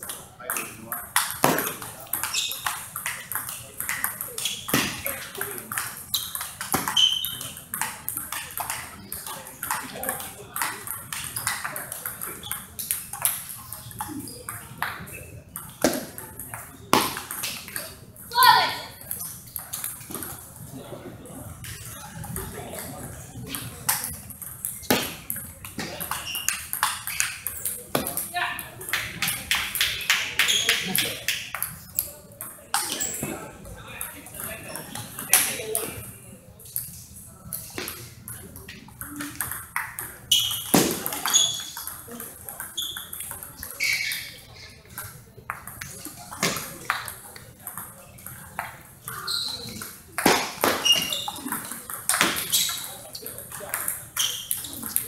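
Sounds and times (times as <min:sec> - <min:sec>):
ball bouncing on table: 0:00.5 - 0:13.4, 0:14.0 - 0:17.8, 0:44.9 - 0:52.9
ball clicking off paddles: 0:23.4 - 0:33.3, 0:37.5 - 0:55.0.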